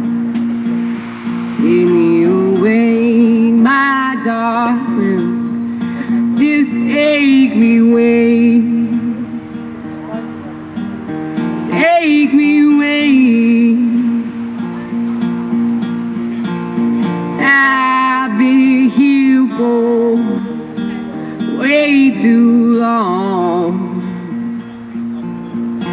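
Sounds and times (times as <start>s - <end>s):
acoustic guitar strumming: 0.0s - 25.9s
young man singing: 17.2s - 24.6s.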